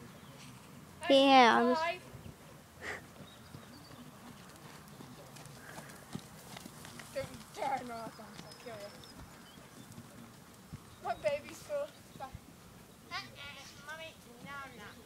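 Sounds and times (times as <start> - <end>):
horse hoofbeats on sand: 2.3 - 12.6.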